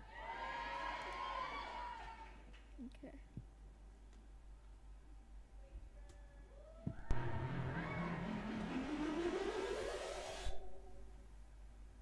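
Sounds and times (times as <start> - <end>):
engine-like whine rising in pitch: 7.1 - 11.2.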